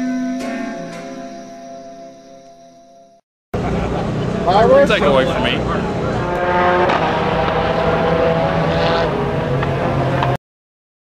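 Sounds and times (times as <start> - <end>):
race car engines: 3.6 - 10.4.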